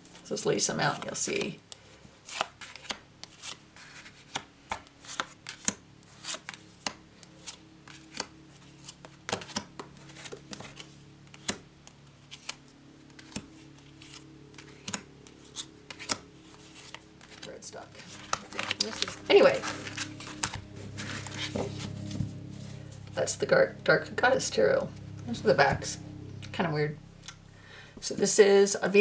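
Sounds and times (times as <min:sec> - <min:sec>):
cards tapping and snapping: 0:02.3 - 0:17.5, 0:18.1 - 0:19.2.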